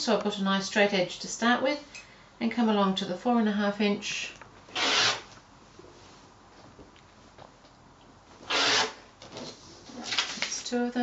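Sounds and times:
rotary cutter slicing fabric: 4.7 - 5.3, 8.5 - 9.0.

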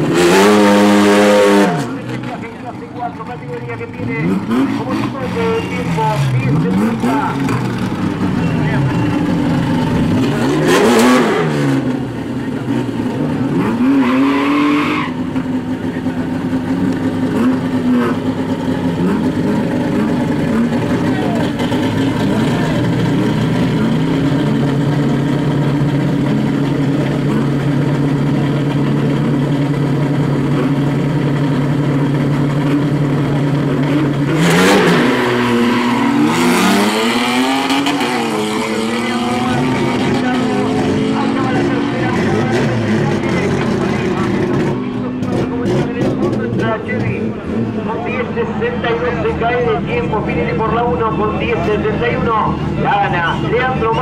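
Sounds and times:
car engines idling: 0.0 - 54.0
car engines revving: 0.0 - 54.0
cars launching and pulling away: 0.0 - 54.0.

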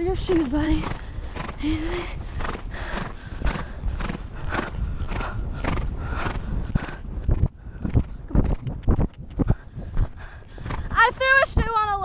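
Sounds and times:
horse galloping on turf: 0.0 - 12.0.

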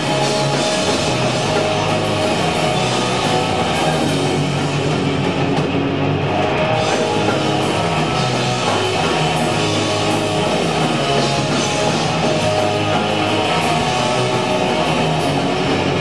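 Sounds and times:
bass guitar: 0.0 - 16.0
drum kit: 0.0 - 16.0
electric guitar: 0.0 - 16.0.

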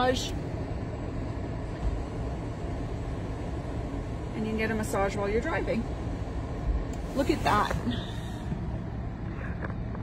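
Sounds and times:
vehicle engine rumble: 0.0 - 10.0.

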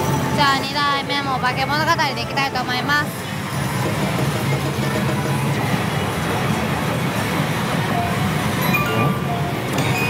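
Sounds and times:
slot machines music and effects: 5.8 - 10.0.

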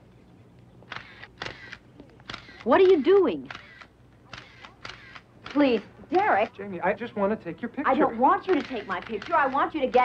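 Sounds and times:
camera shutter clicks: 0.9 - 6.5, 8.5 - 10.0.

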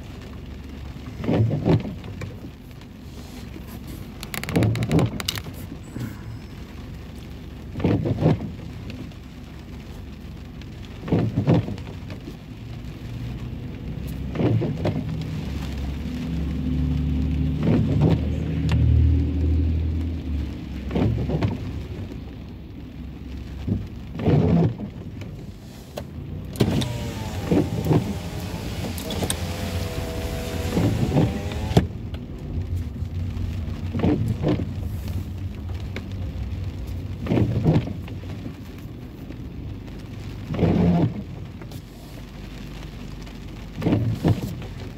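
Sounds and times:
rain on a car: 0.0 - 44.9
windshield wipers swishing: 0.1 - 5.8, 6.5 - 44.9
car engine running: 25.5 - 38.5.

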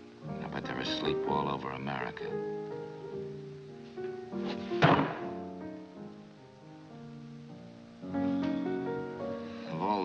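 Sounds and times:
fist thumping on table: 4.8 - 5.3.

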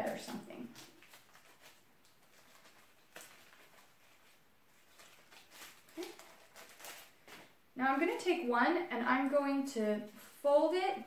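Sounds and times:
filter paper handling: 0.0 - 8.4
soft rustling: 0.0 - 8.5.

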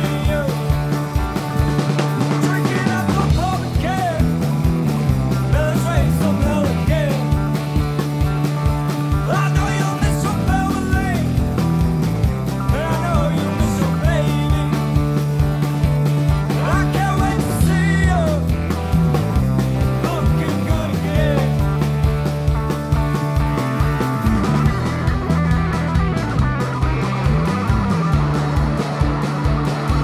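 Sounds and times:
person singing: 0.0 - 0.9, 2.3 - 4.3, 5.5 - 7.4, 9.2 - 11.4, 12.6 - 15.2, 16.5 - 18.5, 19.9 - 21.7
bass guitar: 0.0 - 30.0
distorted electric guitars: 0.0 - 30.0
drum kit: 0.0 - 30.0.

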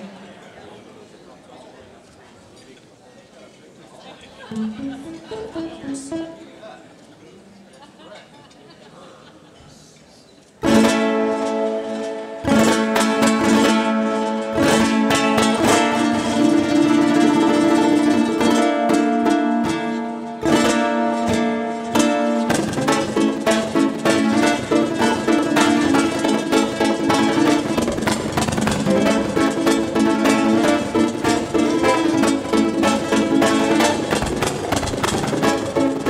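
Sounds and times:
ukulele strumming flamenco: 4.4 - 7.0, 10.6 - 36.0.

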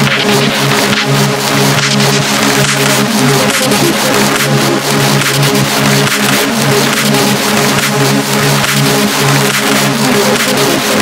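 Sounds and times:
hard techno dance track: 0.0 - 11.0.

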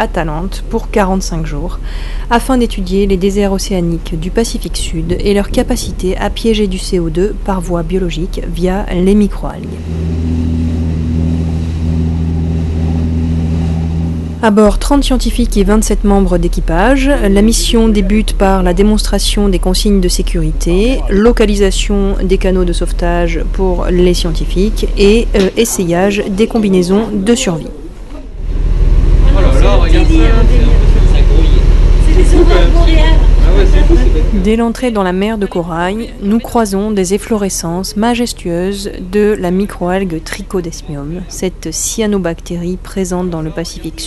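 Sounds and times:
boat diesel engines running: 0.0 - 44.0
indistinct voices talking: 2.4 - 28.3, 29.1 - 44.0
wind: 8.3 - 15.1.

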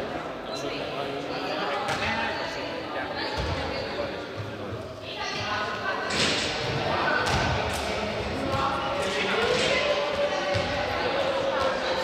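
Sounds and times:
students chattering: 0.0 - 12.0
ball bouncing on hard floor: 7.2 - 8.7.

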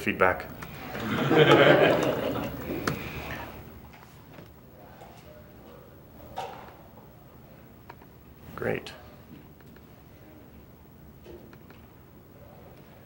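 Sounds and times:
laughter: 0.8 - 2.7.

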